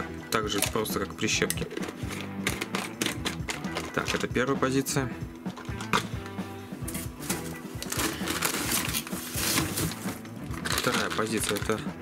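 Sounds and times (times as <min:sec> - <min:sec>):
background music: 0:00.0 - 0:12.0
plastic jar of clamps rattling: 0:00.3 - 0:04.5, 0:05.5 - 0:06.2, 0:07.2 - 0:11.8.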